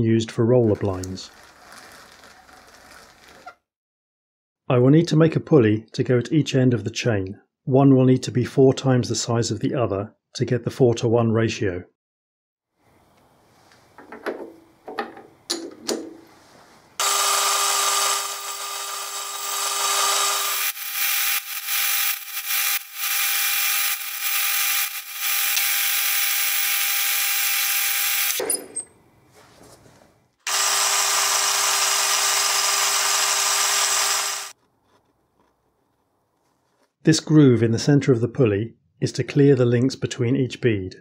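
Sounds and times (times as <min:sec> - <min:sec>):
lathe cutting metal: 0:17.0 - 0:28.4, 0:30.5 - 0:34.5.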